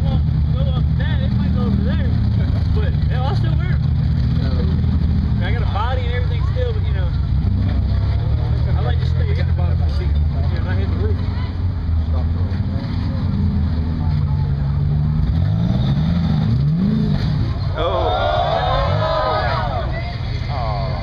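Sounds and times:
buggy engine revving under load: 0.0s - 21.0s.

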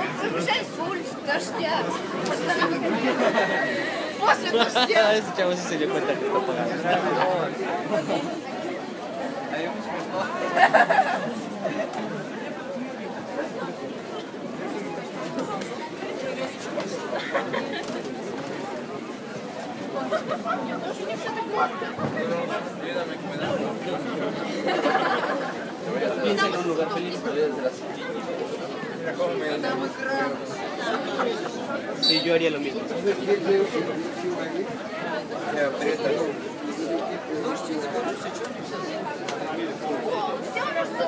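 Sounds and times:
crowd chatter: 0.0s - 41.0s.

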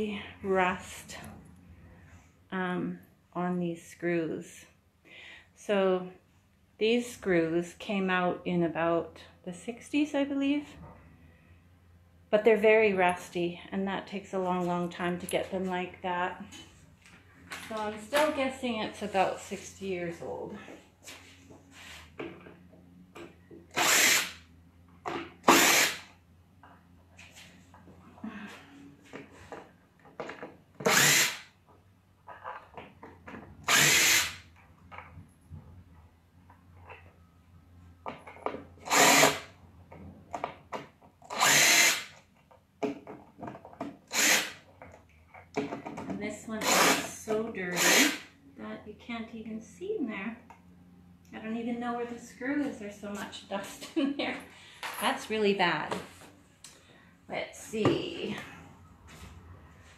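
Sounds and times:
impact driver running: 23.7s - 24.4s, 25.4s - 26.1s, 30.8s - 31.5s, 33.6s - 34.4s, 38.8s - 39.5s, 41.3s - 42.2s, 44.1s - 44.6s, 46.6s - 47.1s, 47.7s - 48.2s.

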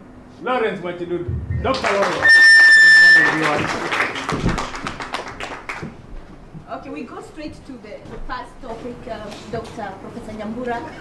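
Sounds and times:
loud high whistle: 1.5s - 4.0s
audience applauding: 1.6s - 6.0s.

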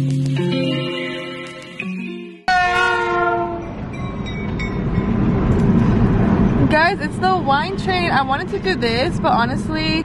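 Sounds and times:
train horn blast: 2.5s - 3.8s
road noise: 2.5s - 10.0s
train rumble: 2.5s - 10.0s.

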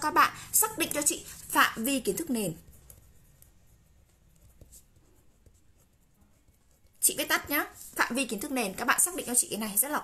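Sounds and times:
pen scratching on paper: 0.6s - 10.0s.

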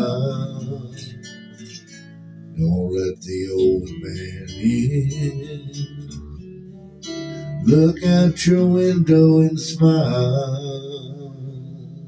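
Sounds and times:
acoustic guitar picking: 0.0s - 12.0s.

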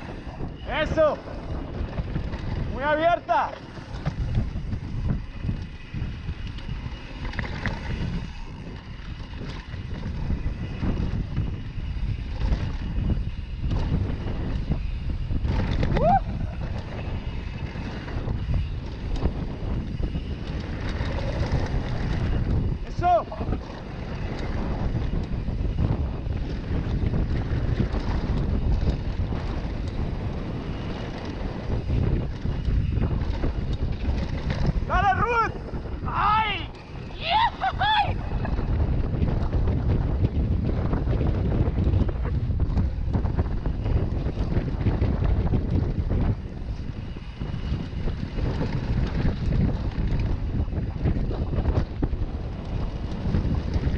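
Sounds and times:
mountain bike rumbling and rattling: 0.0s - 53.9s
wind rushing over microphone: 0.0s - 53.9s.

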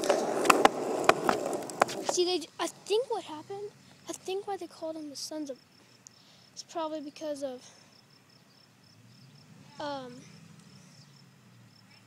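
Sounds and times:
skateboard wheels clacking over cracks: 0.0s - 3.0s
skateboard wheels rolling on concrete: 0.0s - 5.6s.

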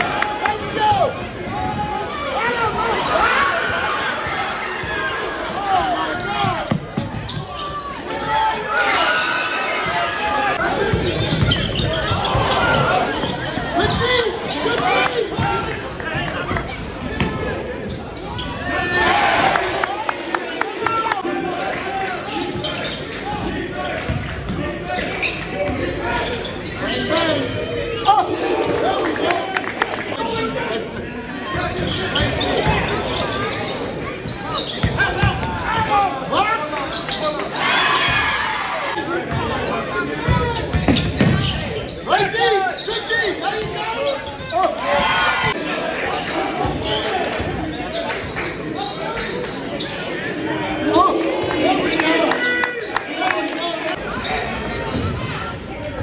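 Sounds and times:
voices echoing in hall: 0.0s - 56.0s.

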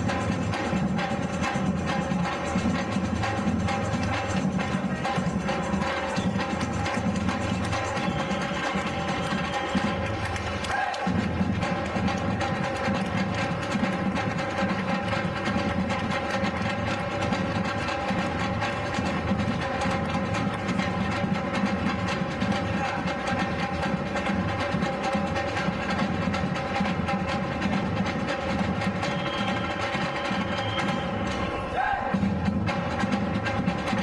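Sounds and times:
rattling snare drums: 0.0s - 34.0s
samba drum ensemble: 0.0s - 34.0s.

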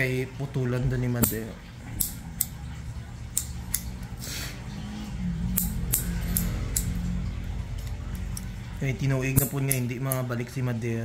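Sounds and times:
nail clipper clicking: 2.0s - 2.6s, 3.3s - 4.0s, 5.6s - 7.0s.

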